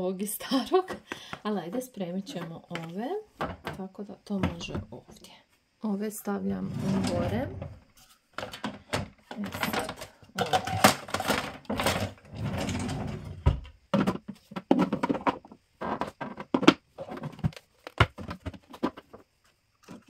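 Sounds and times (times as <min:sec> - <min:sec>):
plastic kitchen items clattering: 0:00.8 - 0:04.9, 0:06.7 - 0:19.2, 0:19.8 - 0:20.0
rustling and sliding: 0:06.4 - 0:08.2.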